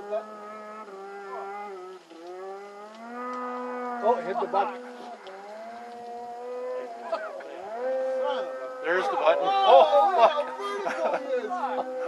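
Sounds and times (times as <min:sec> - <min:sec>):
distant snowmobile engine: 0:00.0 - 0:12.0.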